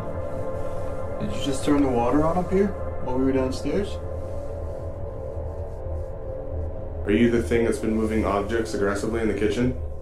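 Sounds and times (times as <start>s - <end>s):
dark ambient drone music: 0.0s - 10.0s.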